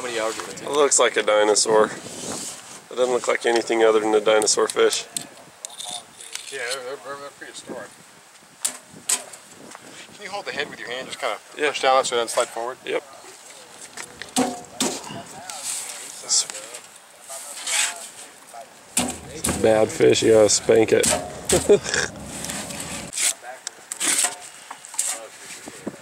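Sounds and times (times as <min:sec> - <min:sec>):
man saying yeah: 0:19.4 - 0:22.2.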